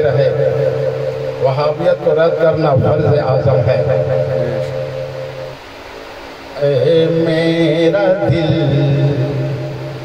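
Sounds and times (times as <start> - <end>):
man chanting a long note: 0.0 - 5.6, 6.6 - 10.0
microphone hiss: 0.0 - 10.0.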